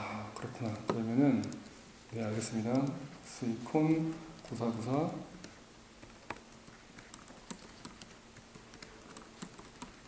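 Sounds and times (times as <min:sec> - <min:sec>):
computer keyboard typing: 0:00.4 - 0:01.7, 0:02.6 - 0:03.0, 0:03.9 - 0:10.0.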